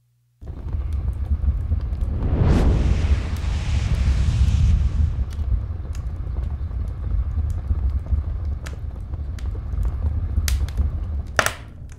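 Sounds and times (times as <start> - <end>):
low rumble: 0.4 - 11.2
sharp crackles: 0.4 - 11.3.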